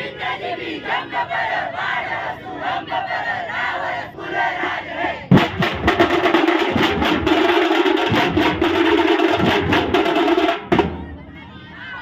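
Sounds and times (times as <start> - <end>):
crowd shouting: 0.0 - 5.4, 10.8 - 12.0
barrel drums beaten fast: 5.3 - 11.1.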